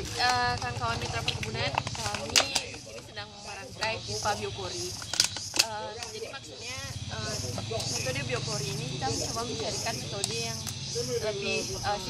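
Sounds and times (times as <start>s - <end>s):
plastic bottles crackling and snapping: 0.0s - 3.1s, 5.0s - 6.2s
people talking indistinctly: 0.0s - 12.0s.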